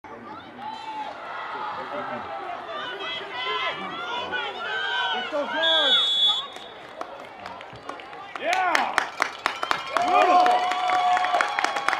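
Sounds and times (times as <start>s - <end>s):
spectators shouting and cheering: 0.1s - 11.9s
referee's whistle: 5.5s - 6.9s.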